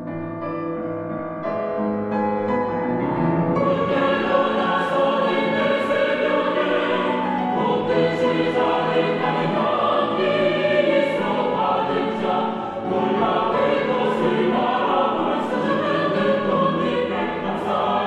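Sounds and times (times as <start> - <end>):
mixed choir singing: 3.5 - 18.0.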